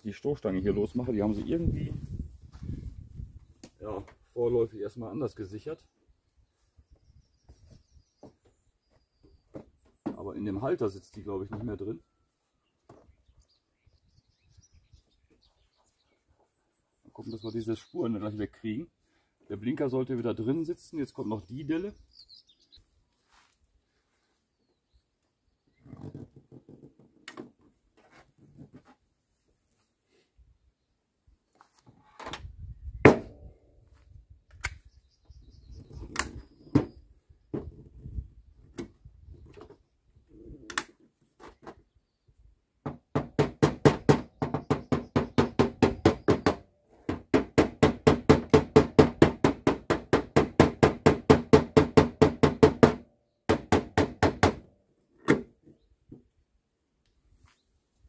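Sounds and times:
knocks on metal panel: 33.1s - 33.3s, 42.9s - 54.6s.

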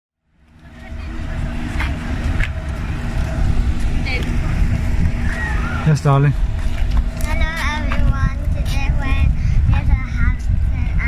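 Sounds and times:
faint constant hum: 0.2s - 11.0s
outdoor background rumble: 0.2s - 11.0s.

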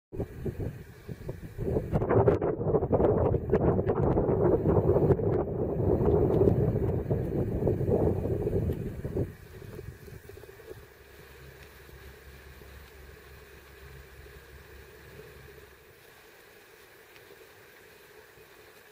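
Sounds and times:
wind buffeting microphone: 0.1s - 11.0s.

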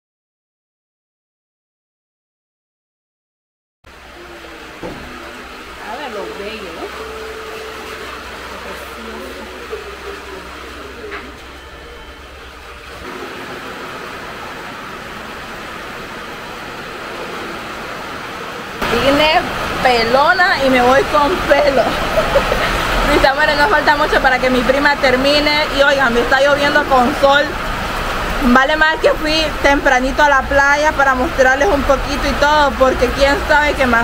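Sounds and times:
rain falling: 3.9s - 34.0s
faint voices: 4.0s - 13.0s
woman talking: 5.8s - 10.0s, 18.8s - 27.6s, 28.4s - 34.0s.

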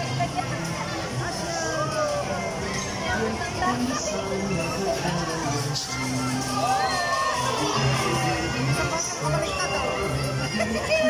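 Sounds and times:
carousel ride music: 0.0s - 11.0s
people's voices: 0.0s - 11.0s.

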